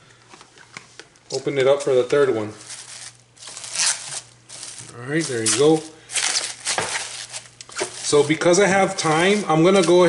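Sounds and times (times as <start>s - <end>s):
cling wrap crinkling: 2.5s - 10.0s.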